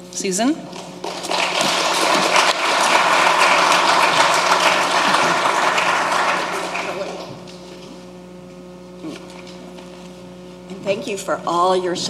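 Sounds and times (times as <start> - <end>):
audience applauding: 1.0 - 7.4.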